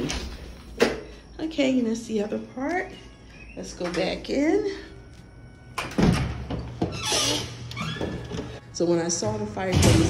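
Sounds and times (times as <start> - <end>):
door hinges squeaking: 5.8 - 8.6.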